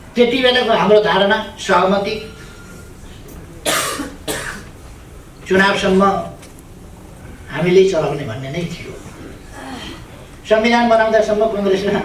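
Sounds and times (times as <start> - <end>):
man speaking: 0.2 - 2.4, 5.4 - 6.4, 7.5 - 9.2, 10.4 - 12.0
man coughing: 3.6 - 4.7.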